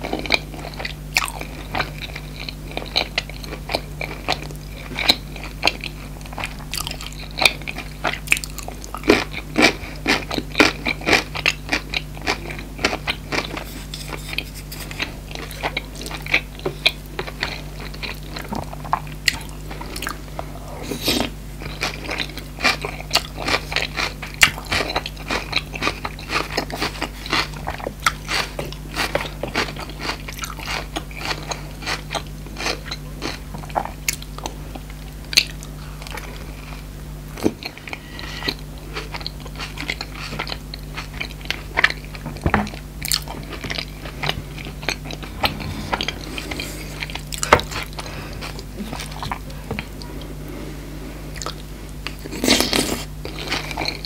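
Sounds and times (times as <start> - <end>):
crunchy chewing: 0.0 - 49.5
faint low hum: 0.0 - 54.0.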